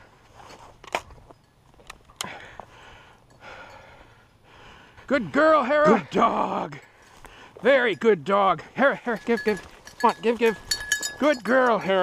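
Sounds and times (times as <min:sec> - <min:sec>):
footsteps on dirt track: 0:05.1 - 0:12.0.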